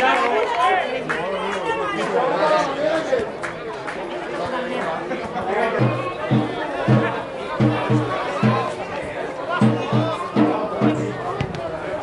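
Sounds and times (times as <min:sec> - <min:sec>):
people talking and calling: 0:00.0 - 0:12.0
music with steady beat: 0:05.8 - 0:08.9, 0:09.6 - 0:11.4.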